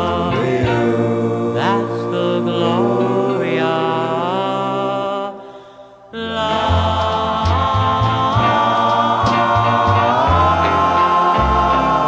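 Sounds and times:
doo-wop vocal group harmonies: 0.0 - 12.0.

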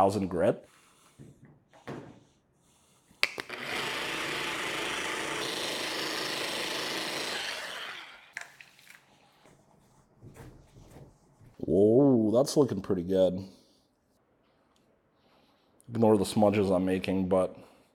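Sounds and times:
machine polisher running: 3.4 - 8.4
towel wiping and handling: 8.8 - 11.6.

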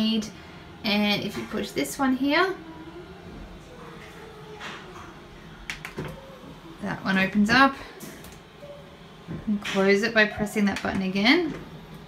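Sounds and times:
toilet seat mechanism whirring: 0.0 - 12.0.

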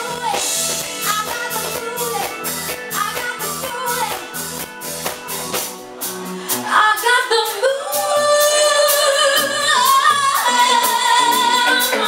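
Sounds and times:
woman singing: 0.0 - 4.7, 6.5 - 12.0
backing music with light beat: 0.0 - 12.0.

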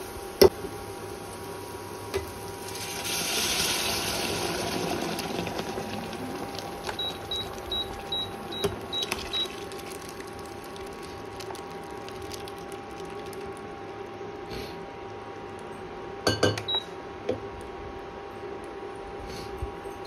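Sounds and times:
liquid sizzling in hot pan: 0.0 - 8.1, 9.1 - 13.6
pot bubbling: 2.2 - 14.1.

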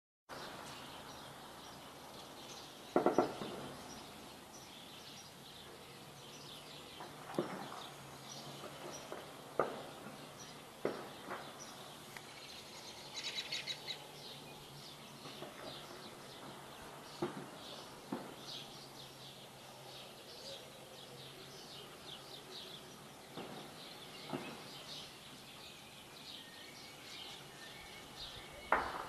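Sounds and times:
birds chirping: 0.3 - 29.0
sharp cracks: 2.9 - 3.8, 28.7 - 29.0.

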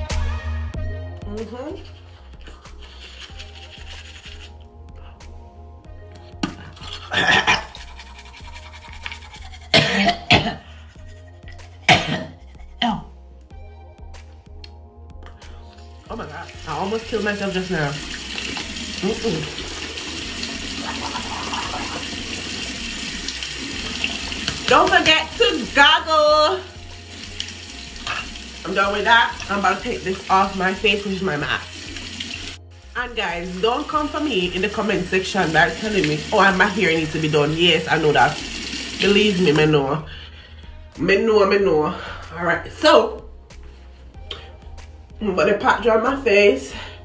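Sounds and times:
background music with bass line: 0.0 - 19.4, 39.4 - 47.0
toothbrush scrubbing teeth: 1.7 - 5.2, 6.5 - 9.9, 10.8 - 12.8, 15.3 - 25.9, 26.5 - 32.6, 33.8 - 39.7
tap running into basin: 16.6 - 25.7.

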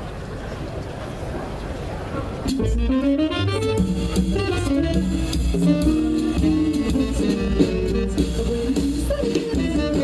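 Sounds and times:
audience murmur: 0.0 - 10.0
jazz band playing: 2.2 - 10.0.

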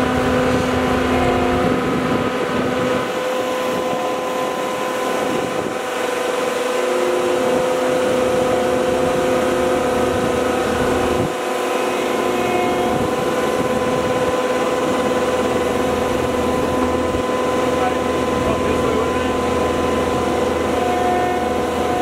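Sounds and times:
diesel engine running: 0.0 - 22.0
steady whine: 0.0 - 22.0.

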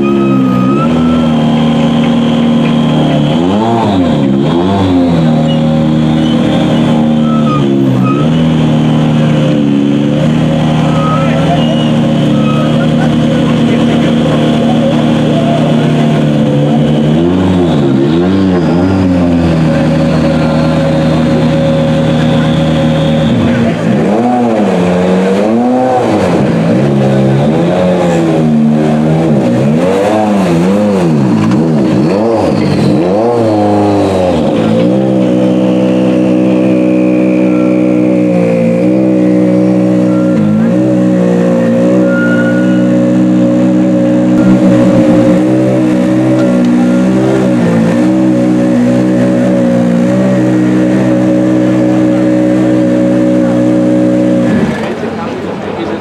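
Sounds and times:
car engine revving and idling: 0.0 - 56.0.

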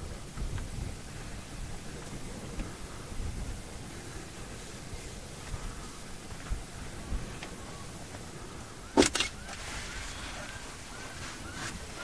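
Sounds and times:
sharp knocks: 9.0 - 9.3.

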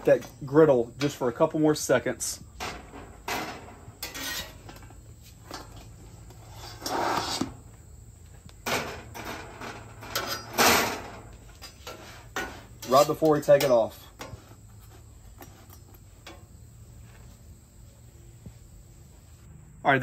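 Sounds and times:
metal spatula scraping griddle: 2.6 - 7.6, 8.7 - 16.5.

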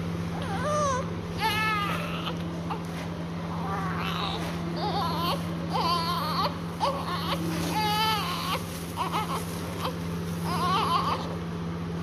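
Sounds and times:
newborn baby crying: 0.3 - 2.9, 3.5 - 11.4.

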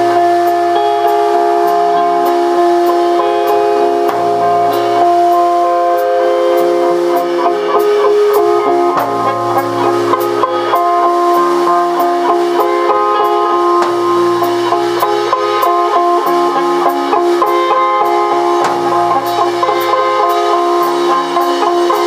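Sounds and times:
live band long held notes: 0.0 - 22.0.

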